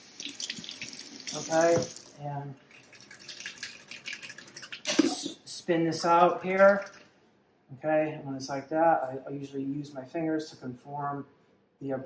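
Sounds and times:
water dripping into steel sink: 0.0s - 5.2s.

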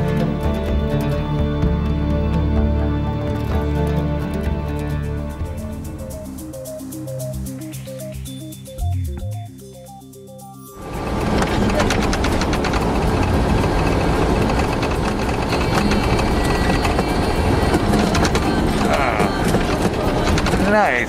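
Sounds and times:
cab rattling: 10.8s - 21.0s
vehicle engine and road rumble: 10.8s - 21.0s.

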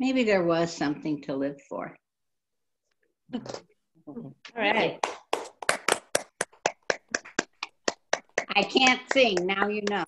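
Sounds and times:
hand clapping: 4.9s - 10.0s.

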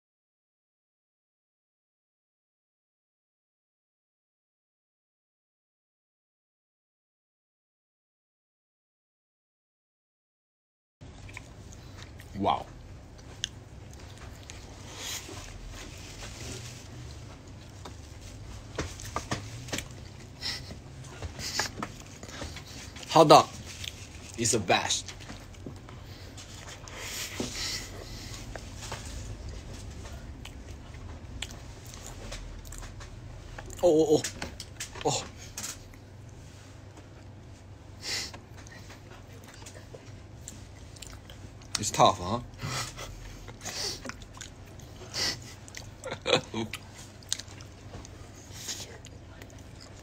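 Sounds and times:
person chewing food: 11.0s - 24.4s, 25.1s - 37.4s, 38.3s - 41.8s, 42.5s - 50.0s
quiet room hum: 11.0s - 50.0s
person speaking: 23.0s - 25.2s, 33.7s - 35.5s.

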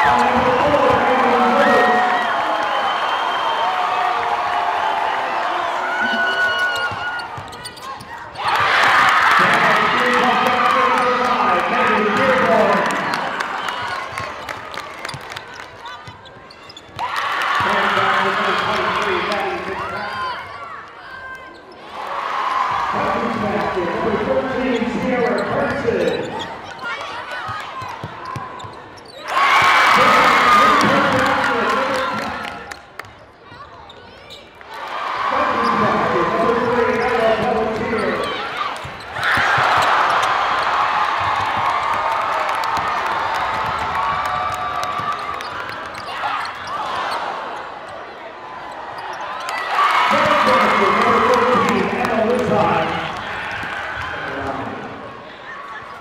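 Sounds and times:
indistinct crowd and player voices: 0.0s - 56.0s.

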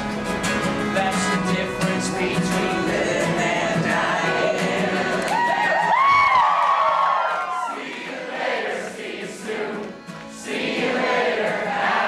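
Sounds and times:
accordion: 0.0s - 5.5s, 7.8s - 12.0s
acoustic guitar: 0.0s - 12.0s
audience singing along: 1.4s - 6.0s, 6.9s - 12.0s.

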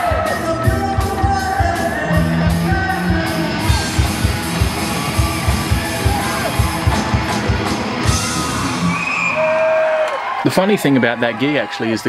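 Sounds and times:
rock band playing live: 0.0s - 9.4s
drum hits: 3.1s - 8.9s.

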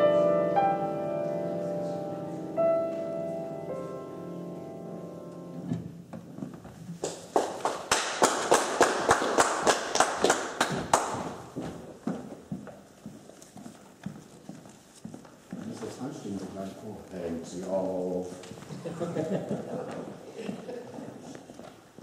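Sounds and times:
piano chord: 0.0s - 6.1s
audience clapping: 7.0s - 11.6s.

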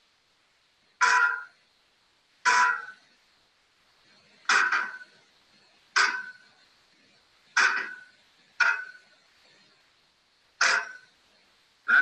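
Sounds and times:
sharp ringing knocks: 1.0s - 1.6s, 2.5s - 3.0s, 4.5s - 5.2s, 6.0s - 6.5s, 7.6s - 9.1s, 10.6s - 11.1s.

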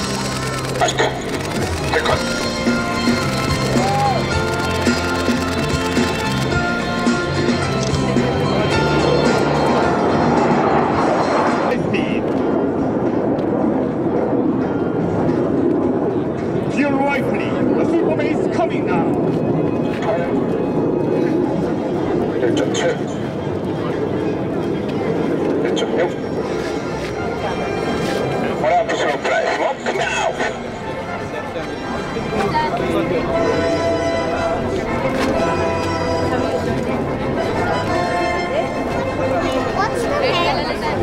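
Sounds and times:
jet engines roaring overhead: 0.0s - 41.0s.

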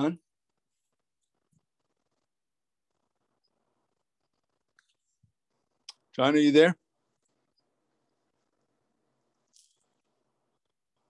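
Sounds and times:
soft high-pitched noise: 0.0s - 11.0s.

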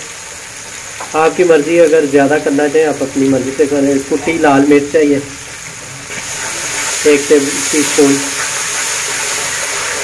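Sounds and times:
masala sizzling in a pot: 0.0s - 10.0s.

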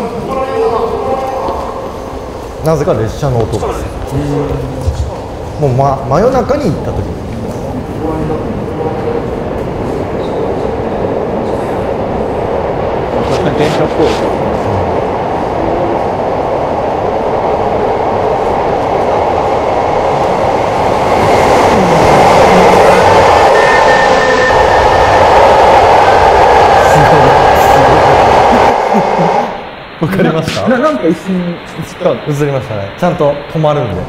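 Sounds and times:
faint high whine: 0.0s - 34.0s
train rumbling in tunnel: 0.0s - 34.0s.

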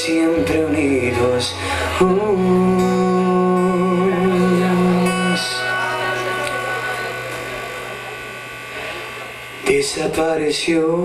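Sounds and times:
man singing: 0.0s - 7.2s, 9.6s - 11.0s
acoustic guitar: 0.0s - 11.0s
bass: 0.0s - 11.0s.

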